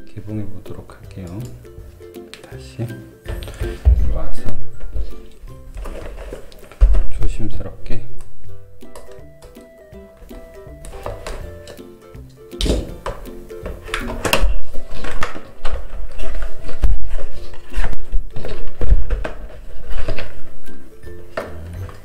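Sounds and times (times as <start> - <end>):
background music: 0.0 - 22.0
cardboard box being opened: 5.8 - 6.8.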